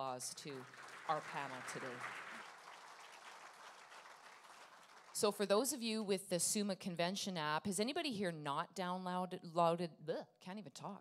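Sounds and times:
audience applauding: 0:00.5 - 0:05.2.

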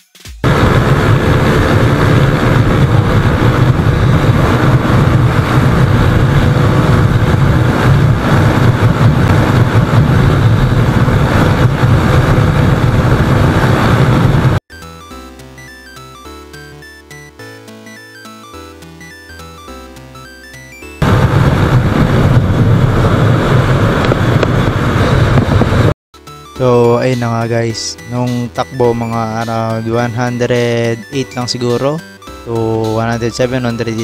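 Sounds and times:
motorcycle engine at full throttle: 0:00.4 - 0:14.6, 0:21.0 - 0:25.9
wind rush on microphone: 0:00.4 - 0:14.6, 0:21.0 - 0:26.0
electronic music: 0:14.7 - 0:21.0, 0:26.3 - 0:34.0.

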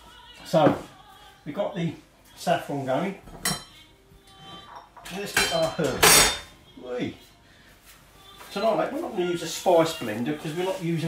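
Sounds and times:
kitchenware clinking: 0:03.2 - 0:06.6.

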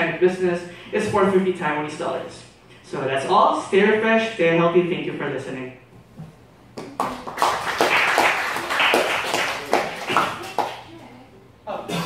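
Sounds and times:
audience clapping: 0:06.8 - 0:10.9.

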